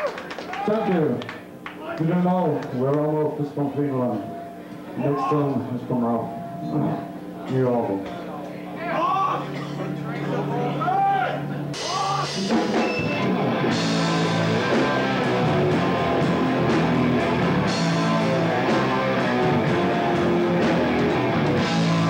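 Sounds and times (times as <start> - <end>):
person speaking announcement: 1.9 - 4.4, 5.0 - 11.0
sustained low guitar tone: 9.7 - 22.0
heavy metal band playing live: 11.6 - 22.0.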